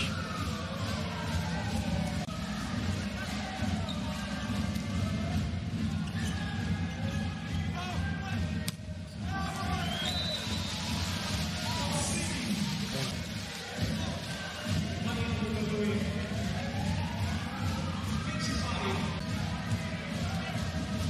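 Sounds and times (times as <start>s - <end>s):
crowd chanting and singing: 0.0s - 21.0s
high whistle: 9.6s - 10.9s.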